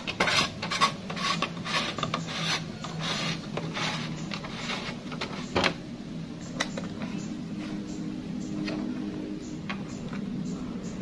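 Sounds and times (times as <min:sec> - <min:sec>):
plastic rubbing and scraping: 0:00.0 - 0:05.8
steady low hum: 0:00.0 - 0:11.0.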